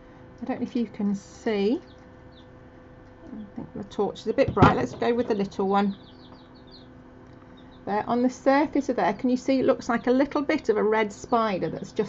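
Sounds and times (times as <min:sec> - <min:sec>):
low steady hum: 0:00.0 - 0:12.0
chicks peeping: 0:01.8 - 0:12.0.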